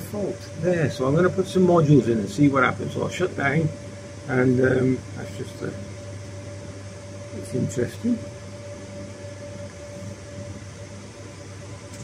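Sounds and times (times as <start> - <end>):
cooling fans humming: 0.0 - 12.0.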